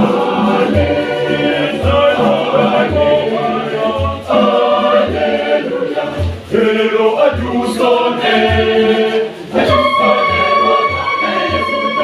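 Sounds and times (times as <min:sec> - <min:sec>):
hand drums thumping: 0:00.0 - 0:12.0
mixed choir singing: 0:00.0 - 0:12.0.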